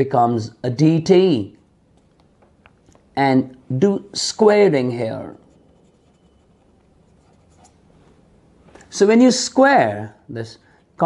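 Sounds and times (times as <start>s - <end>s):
pen scratching on paper: 5.4s - 7.8s.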